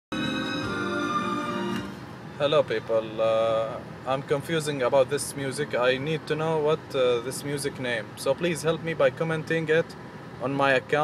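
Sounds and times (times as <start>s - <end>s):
music on car radio: 0.1s - 2.0s.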